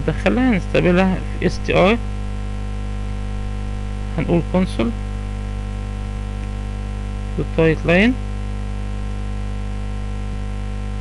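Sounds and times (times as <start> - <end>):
man speaking: 0.0 - 2.1, 4.1 - 5.0, 7.4 - 8.2
electrical mains hum: 0.0 - 11.0.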